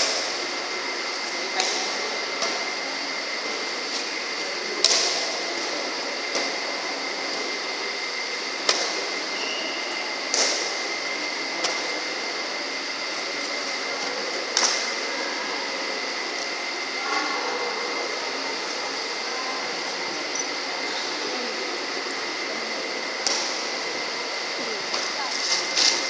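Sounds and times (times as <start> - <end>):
faint high whine: 0.0 - 26.0
fans whirring: 0.0 - 26.0
badminton rackets hitting shuttlecock: 4.8 - 5.2, 10.3 - 10.8.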